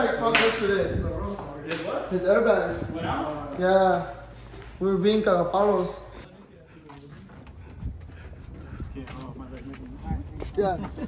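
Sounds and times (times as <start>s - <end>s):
low microphone rumble: 0.7s - 1.6s, 2.5s - 3.4s
footsteps on concrete: 3.2s - 11.0s.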